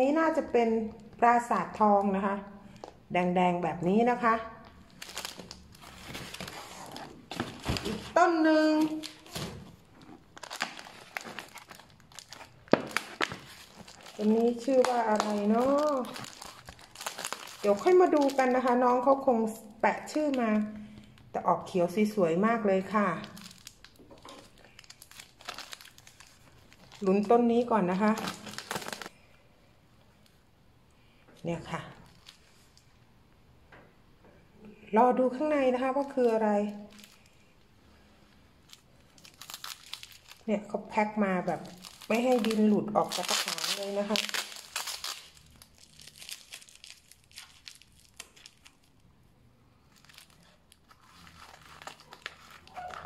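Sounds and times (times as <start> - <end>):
plastic wrapping crinkling: 4.2 - 21.4, 22.7 - 29.2, 32.0 - 32.9, 35.8 - 37.6, 38.6 - 53.0.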